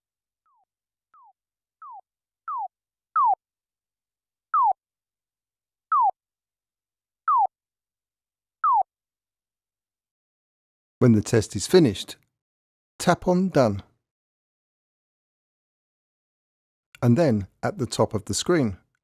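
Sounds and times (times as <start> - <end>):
short falling chirp beeps: 1.2 - 3.4, 4.6 - 4.8, 5.9 - 6.2, 7.3 - 7.5, 8.6 - 8.9.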